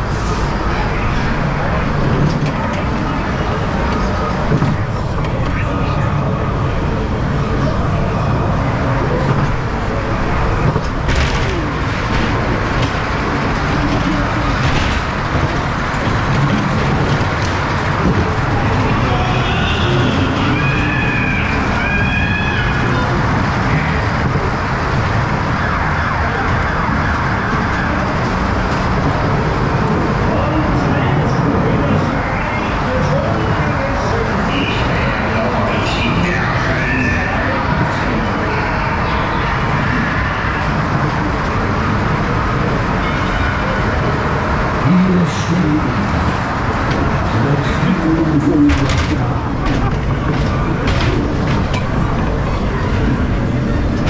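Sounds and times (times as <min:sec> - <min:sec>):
ride car rumbling on track: 0:00.0 - 0:54.0
wailing siren-like sound: 0:25.1 - 0:28.3
voices and spooky sound effects: 0:30.0 - 0:50.2.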